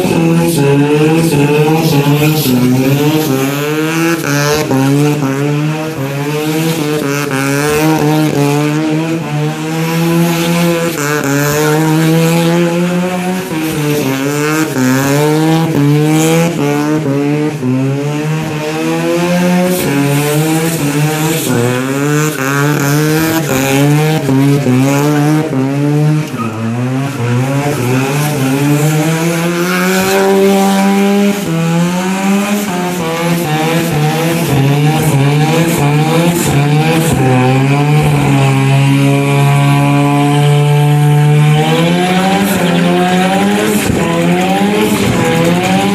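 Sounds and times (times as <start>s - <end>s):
rotary engine revving: 0.0s - 45.9s
tyres spinning and squealing: 19.4s - 30.1s.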